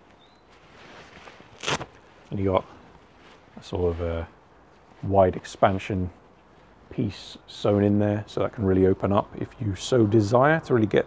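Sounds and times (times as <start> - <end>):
fabric rustling: 0.0 - 6.9.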